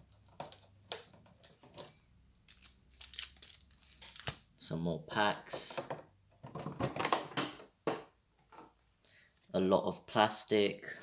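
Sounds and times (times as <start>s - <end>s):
foil packaging crinkling: 2.5s - 4.3s.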